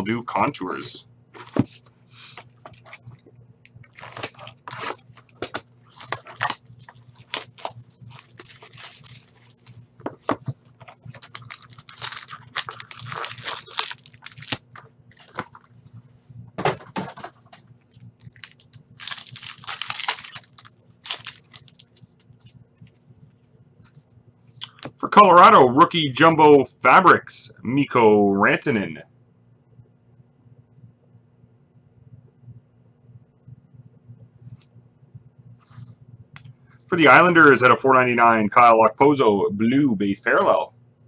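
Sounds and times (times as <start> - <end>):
faint steady hum: 0.0 - 41.0
plastic wrap crinkling and tearing: 3.8 - 9.8, 10.8 - 15.7, 18.2 - 22.1.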